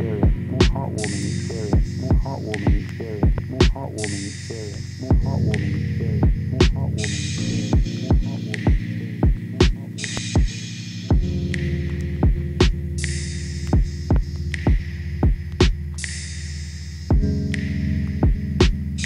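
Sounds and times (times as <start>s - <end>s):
low synth chords: 0.0s - 19.0s
deep kick drum: 0.2s - 0.8s, 1.8s - 3.8s, 5.1s - 5.6s, 6.2s - 9.8s, 10.4s - 11.5s, 12.2s - 12.9s, 13.8s - 15.8s, 17.1s - 17.4s, 18.2s - 18.8s.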